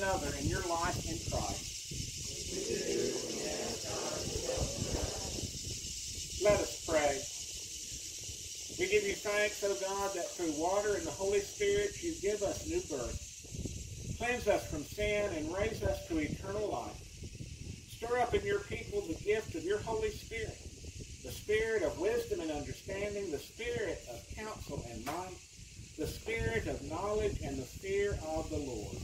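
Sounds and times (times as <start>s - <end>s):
man reading aloud: 0.0s - 1.6s, 2.4s - 5.2s, 6.4s - 7.2s, 8.8s - 13.2s, 14.2s - 17.0s, 17.9s - 20.6s, 21.2s - 25.4s, 26.0s - 29.0s
steady high hiss: 0.0s - 29.0s.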